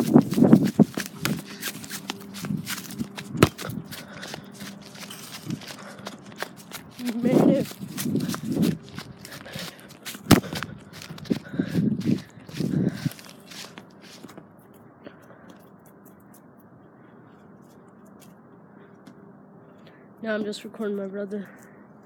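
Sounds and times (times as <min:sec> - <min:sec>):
footsteps on grass: 0:00.0 - 0:14.4.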